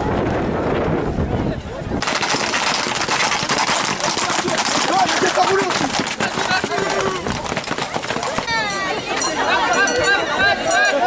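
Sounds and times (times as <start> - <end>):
horse hooves clattering on asphalt: 2.0 - 9.5
crowd voices calling out: 4.1 - 11.0.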